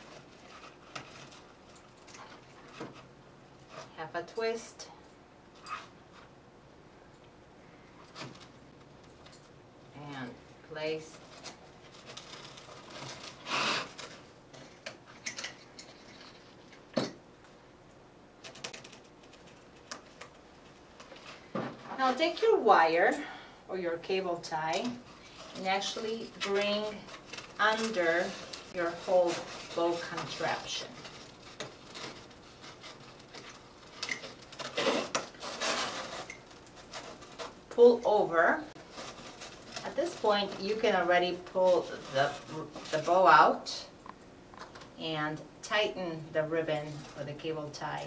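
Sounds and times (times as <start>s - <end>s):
wired ribbon rustling: 10.9s - 16.8s, 24.1s - 43.7s.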